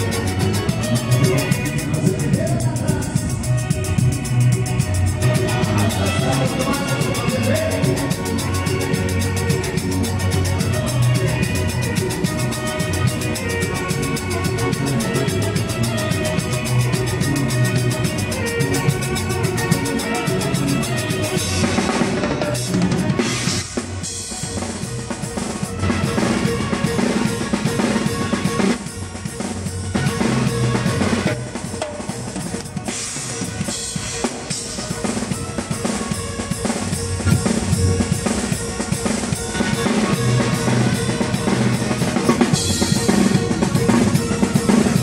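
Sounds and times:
band playing: 0.0s - 45.0s
drum kit playing: 0.0s - 45.0s.

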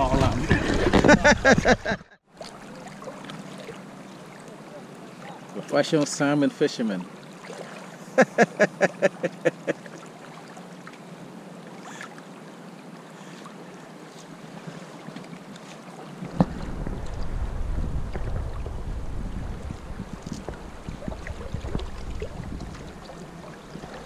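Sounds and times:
wind buffeting microphone: 16.3s - 23.4s.

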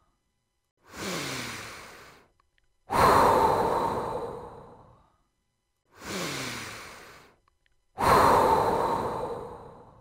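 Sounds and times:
person breathing deeply: 0.8s - 2.3s, 2.9s - 5.3s, 5.9s - 7.4s, 8.0s - 10.0s.

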